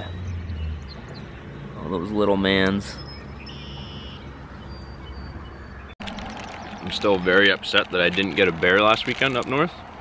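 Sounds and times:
bird call: 2.9 - 6.0.

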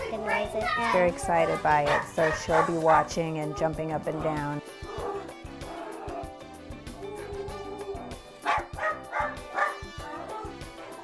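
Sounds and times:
background music: 0.0 - 11.0
dog barking: 0.3 - 3.2, 4.2 - 6.3, 7.1 - 11.0.

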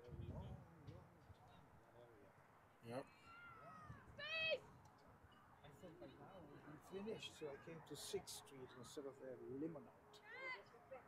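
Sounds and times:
distant high-pitched shouts: 3.1 - 4.7.

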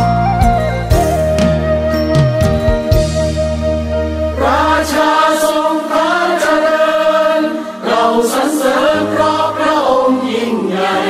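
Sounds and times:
choir singing: 4.3 - 11.0.

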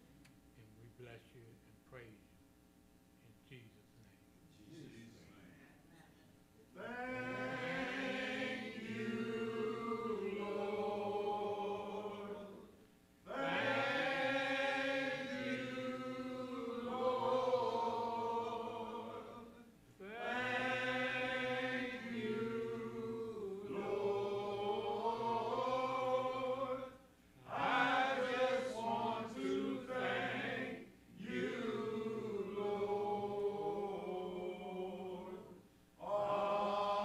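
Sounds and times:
voices singing a hymn: 6.7 - 37.0.

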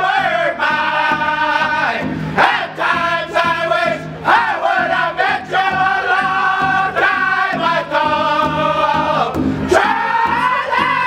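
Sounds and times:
group singing in high voices: 0.0 - 11.0
large hand drum beat: 0.0 - 11.0.

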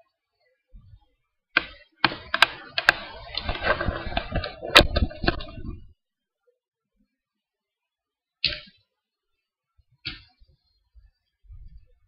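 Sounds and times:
laptop being handled: 2.0 - 5.7.

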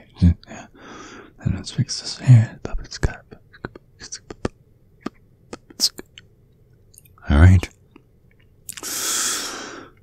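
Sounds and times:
wet mouth clicks and smacks: 7.9 - 8.9
short breathy hiss: 8.8 - 10.0.

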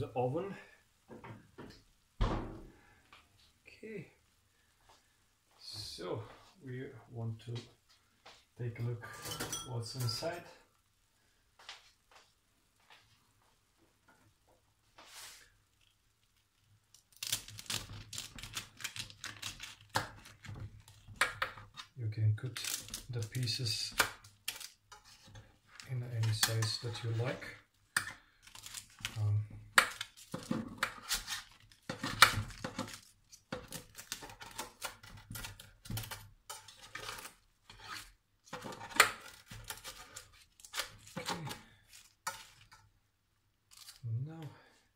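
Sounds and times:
knife cutting crisp pastry: 29.8 - 42.6.

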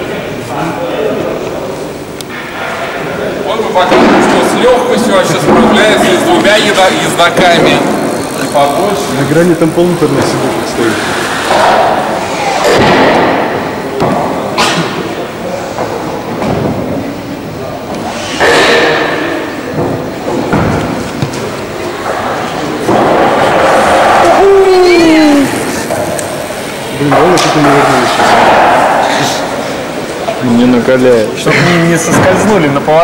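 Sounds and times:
indistinct voices: 0.0 - 33.0.

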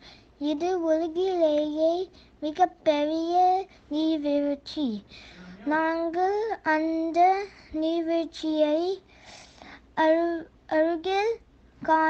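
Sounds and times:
young child sing-song voice: 0.0 - 12.0.

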